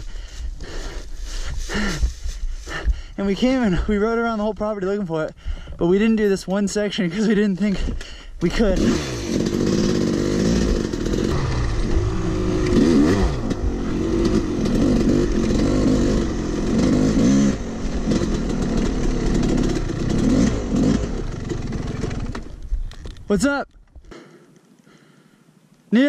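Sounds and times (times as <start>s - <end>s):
dirt bike engine revving: 8.5s - 22.6s
low rush of wind: 9.0s - 23.3s.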